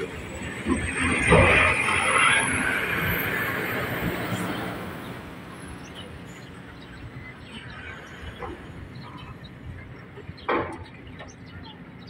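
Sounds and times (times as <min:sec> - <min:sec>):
truck engine rumble: 0:00.0 - 0:12.0
tyre and road noise: 0:00.0 - 0:12.0.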